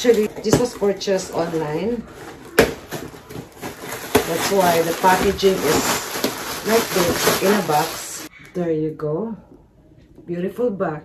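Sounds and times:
packaging rustling: 0.0s - 8.3s.

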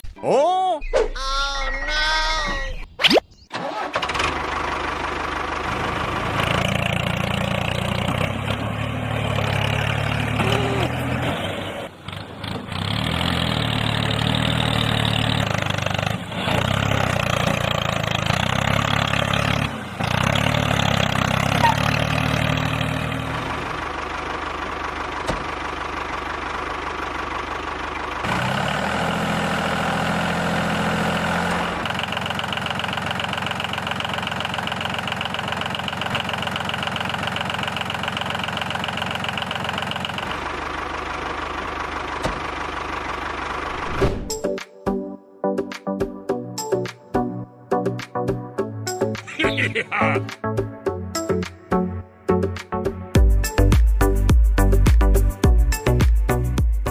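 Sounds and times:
tractor engine running: 3.5s - 44.4s.

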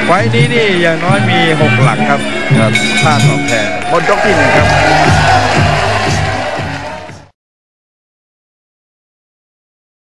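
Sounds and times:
crowd noise: 0.0s - 7.4s
drum strokes: 2.6s - 6.4s.

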